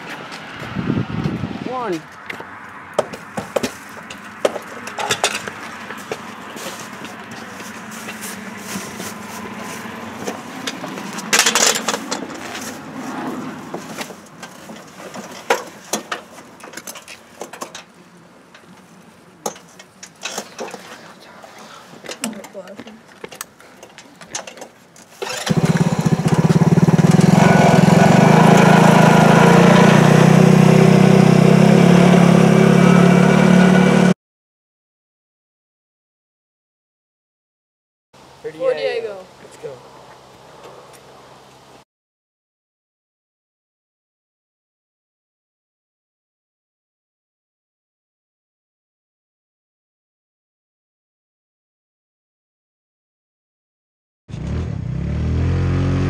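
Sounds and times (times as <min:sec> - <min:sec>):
small petrol engine running: 0:25.2 - 0:34.1.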